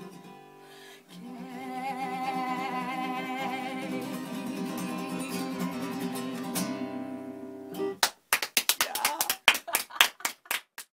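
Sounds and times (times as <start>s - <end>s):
hand claps: 8.0s - 10.9s.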